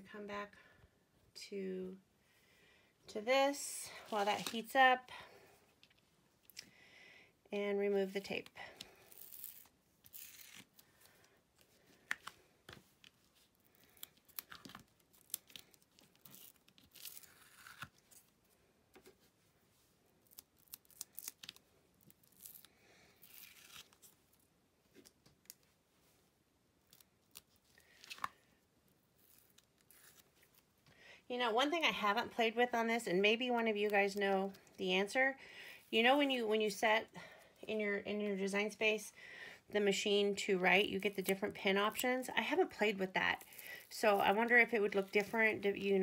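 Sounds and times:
masking tape peeling: 9.0s - 10.8s, 13.7s - 18.3s, 20.2s - 24.1s, 29.2s - 30.6s.

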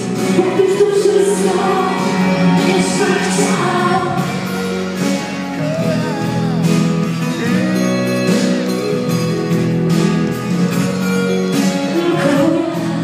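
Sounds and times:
acoustic guitar: 0.0s - 13.0s
woman and man singing duet: 0.2s - 4.5s, 11.9s - 13.0s.

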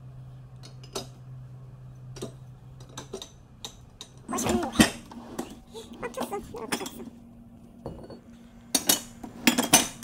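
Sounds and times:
glass bottles clinking: 7.8s - 10.0s.

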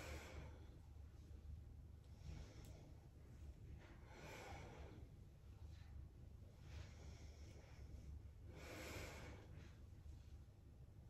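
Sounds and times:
woman breathing: 0.0s - 6.0s, 6.6s - 10.2s
steady low hum: 0.0s - 11.0s.

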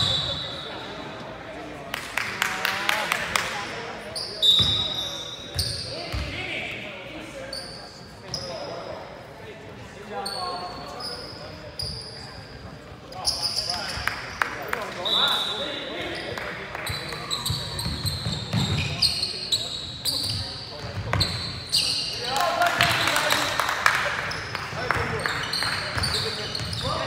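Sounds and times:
sneakers squeaking: 0.0s - 1.2s, 4.0s - 9.1s, 10.2s - 27.0s.

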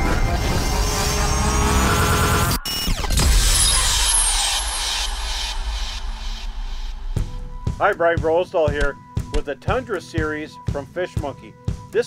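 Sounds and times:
deep low rumble: 3.2s - 7.8s.

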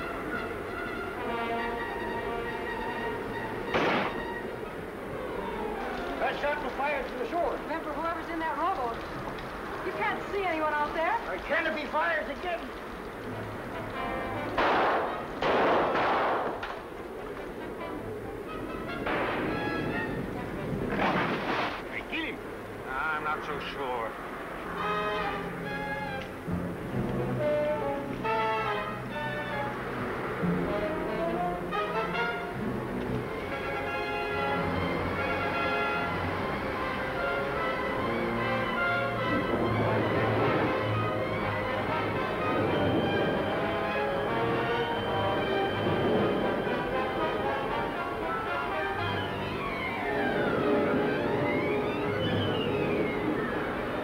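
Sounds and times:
dramatic orchestral score: 0.0s - 54.0s
rifle shots: 3.7s - 4.3s, 14.6s - 16.8s, 20.9s - 21.9s.

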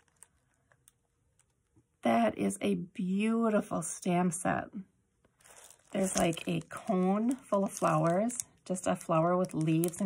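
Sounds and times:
plastic packaging ticking: 0.0s - 1.6s, 5.4s - 10.0s.

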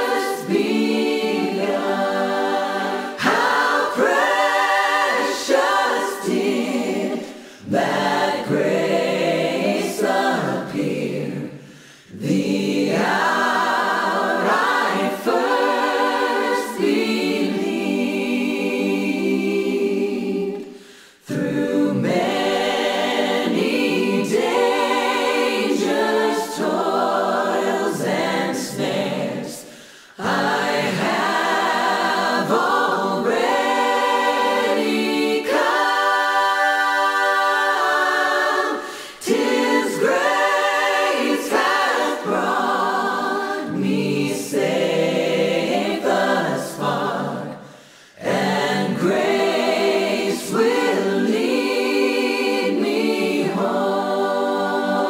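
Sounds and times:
choir singing a cappella: 0.0s - 55.0s.

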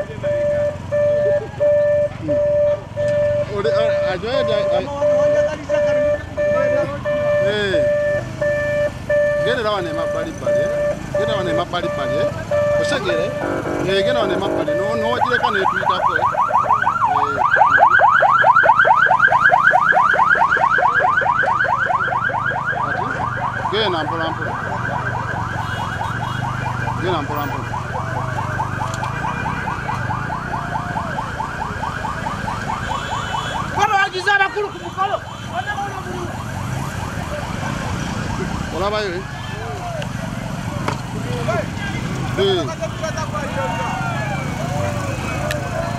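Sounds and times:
electronic siren yelping: 0.0s - 39.7s, 43.5s - 45.9s.

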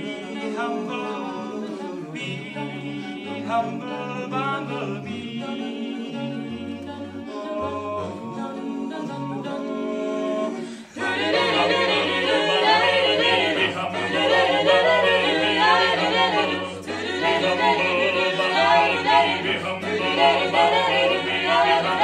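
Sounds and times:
a cappella group singing: 0.0s - 22.0s.

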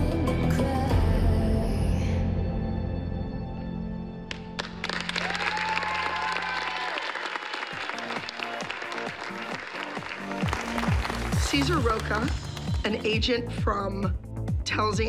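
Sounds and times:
audience applauding: 4.3s - 13.2s
dance music: 7.6s - 15.0s.

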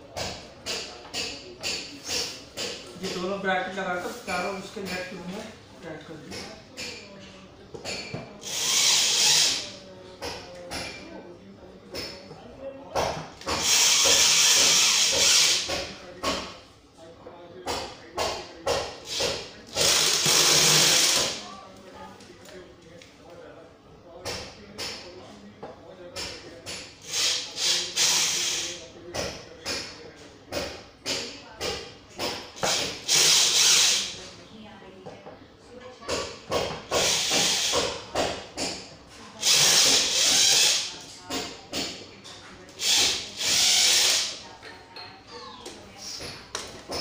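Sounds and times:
electric drill driving screws: 19.8s - 21.4s, 42.8s - 44.3s.

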